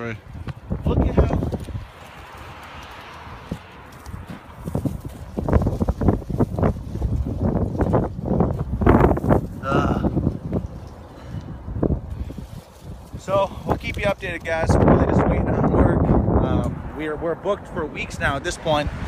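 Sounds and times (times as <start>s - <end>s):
footsteps on mulch and dirt: 0.2s - 11.1s, 11.9s - 14.7s.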